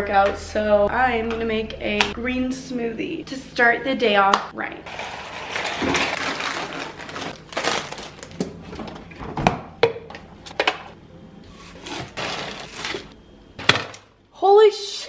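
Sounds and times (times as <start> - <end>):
bags rustling: 4.9 - 8.4, 11.6 - 13.2.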